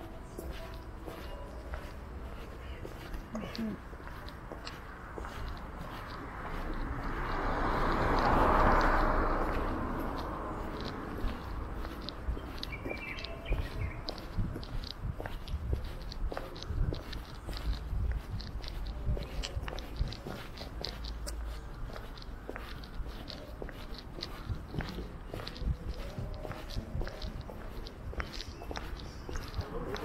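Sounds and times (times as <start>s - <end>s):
footsteps on concrete: 0.0s - 30.0s.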